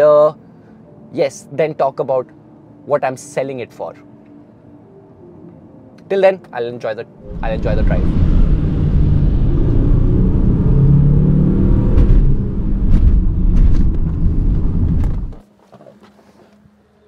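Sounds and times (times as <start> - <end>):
diesel engine rumble: 7.2 - 15.4
road noise inside car: 7.2 - 15.4.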